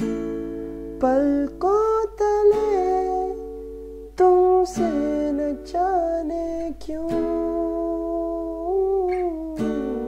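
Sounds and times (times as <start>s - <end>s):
acoustic guitar chord strummed: 0.0s - 10.0s.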